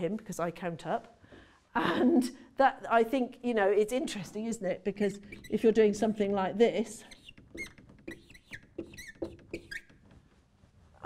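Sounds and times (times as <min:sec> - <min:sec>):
whiteboard marker squeaking: 0:05.0 - 0:10.3.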